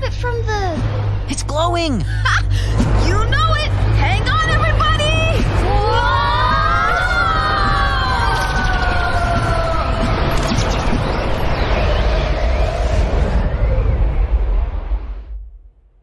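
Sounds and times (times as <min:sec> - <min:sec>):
heavy low rumble: 0:00.0 - 0:16.0
swirling wash of noise: 0:02.3 - 0:15.5.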